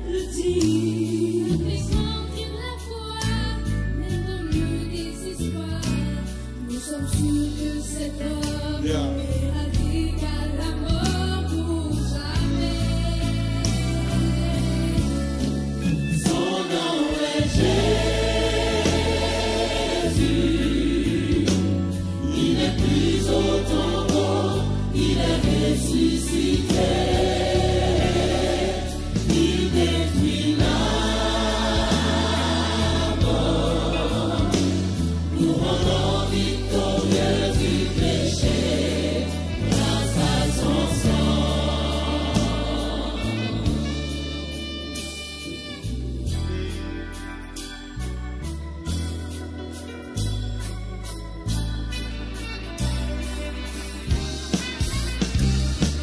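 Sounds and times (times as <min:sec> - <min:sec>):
vocal group singing gospel: 0:00.0 - 0:45.9
live band with keyboard: 0:00.0 - 0:56.0.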